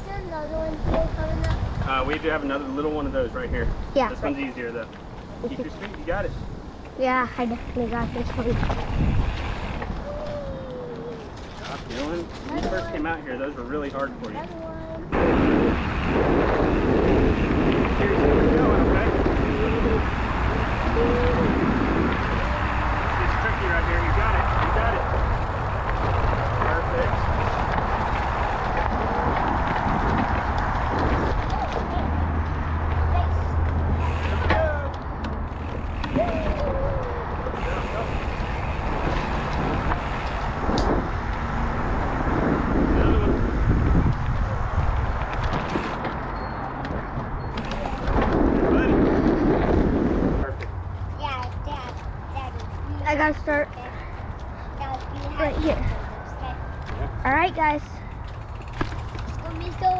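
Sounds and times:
wind rushing on microphone: 0:00.0 - 0:59.9
bike knocks and rattles: 0:24.2 - 0:33.0, 0:33.7 - 0:37.2, 0:44.1 - 0:49.2, 0:58.0 - 0:59.9.

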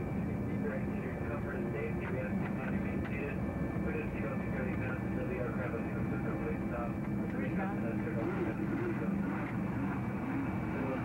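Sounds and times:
jet engine drone in cabin: 0:00.0 - 0:11.0
faint indistinct voices: 0:00.2 - 0:11.0.

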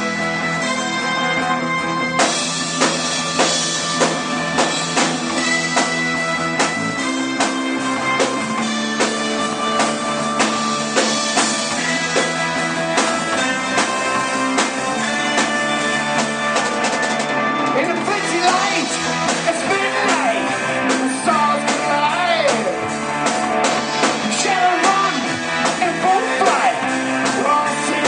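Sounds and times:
guitar: 0:00.0 - 0:28.0
drum kit beat: 0:02.0 - 0:28.0.

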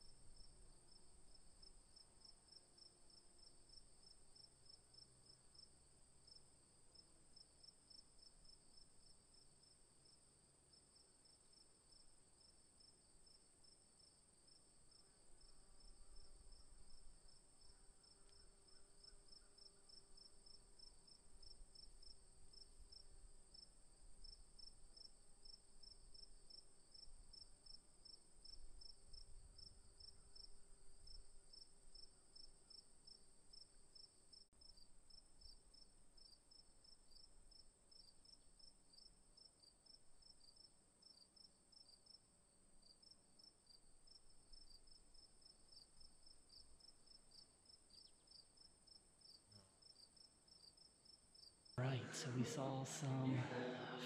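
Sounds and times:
insect chirp pulsing: 0:00.0 - 0:51.8.

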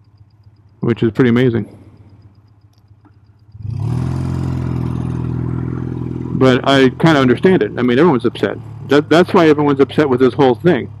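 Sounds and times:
motorcycle engine: 0:00.0 - 0:11.0.

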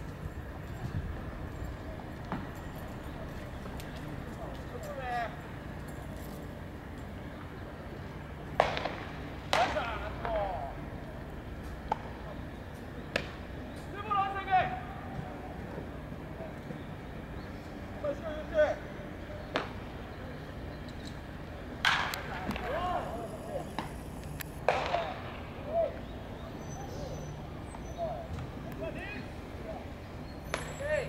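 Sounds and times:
bat cracking baseball: 0:08.5 - 0:10.5, 0:21.8 - 0:22.9, 0:24.6 - 0:25.4
players shouting: 0:13.9 - 0:15.6, 0:21.9 - 0:24.0.

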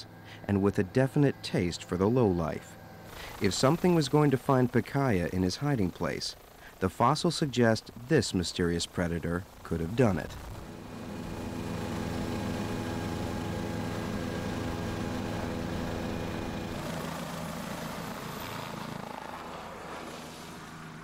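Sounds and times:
helicopter rotor hum: 0:00.0 - 0:21.0.

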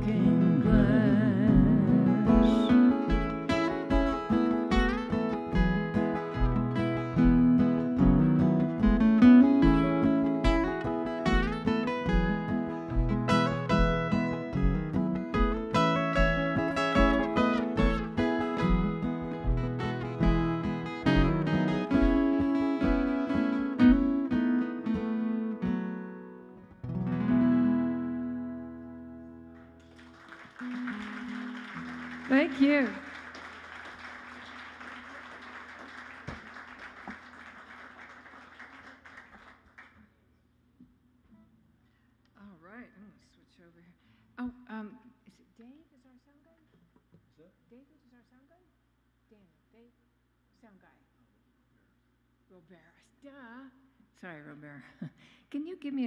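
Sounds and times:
acoustic guitars picking: 0:00.0 - 0:38.2
low kick drum beat: 0:05.6 - 0:23.2
audience applause: 0:29.8 - 0:40.0.

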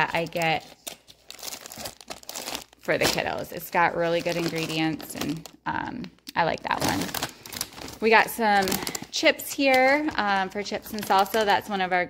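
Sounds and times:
plastic bag crinkling: 0:00.0 - 0:11.7.

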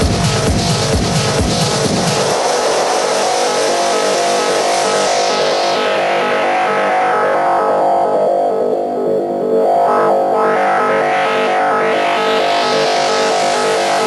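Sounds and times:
held synth tones: 0:06.4 - 0:14.0.

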